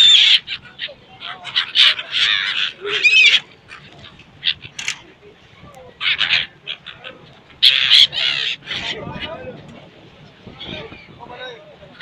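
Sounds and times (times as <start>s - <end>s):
gulls calling: 0.0s - 12.0s.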